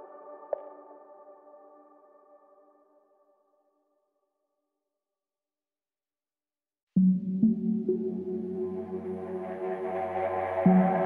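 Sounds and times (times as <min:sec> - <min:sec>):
instrumental soundtrack music: 0:07.0 - 0:11.0.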